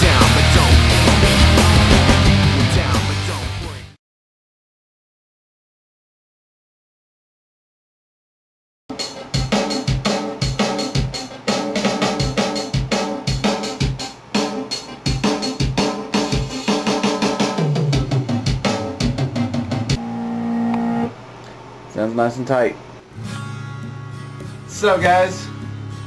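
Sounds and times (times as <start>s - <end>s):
fast rock drumming: 0.0s - 3.9s, 8.9s - 20.0s
pitched notes: 19.9s - 21.2s.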